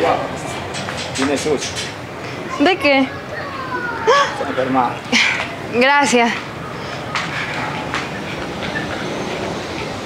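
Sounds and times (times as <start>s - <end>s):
street noise rumble: 0.0s - 10.0s.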